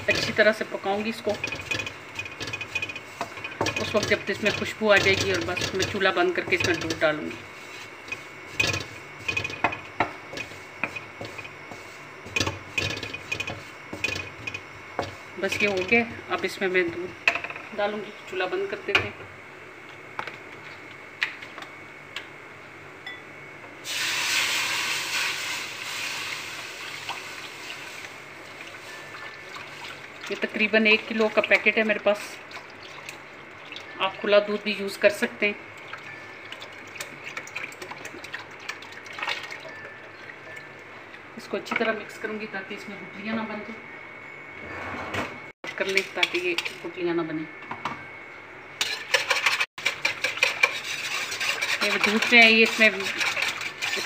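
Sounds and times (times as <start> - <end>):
wooden spatula scraping metal pan: 48.8 - 54.0.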